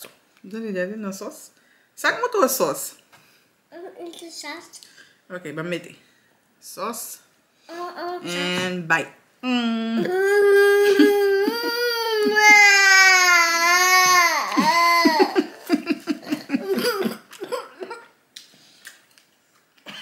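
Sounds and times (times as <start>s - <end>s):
person crying and sobbing: 9.6s - 18.0s.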